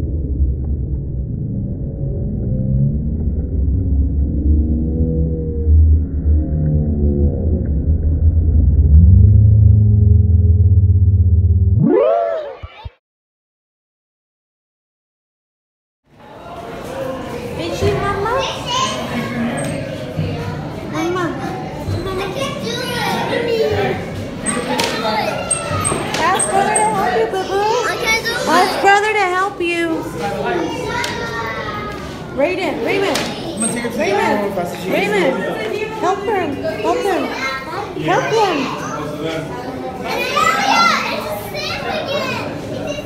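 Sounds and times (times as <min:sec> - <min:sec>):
muffled underwater rumble: 0:00.0 - 0:11.8
children chattering and calling out: 0:16.2 - 0:43.0.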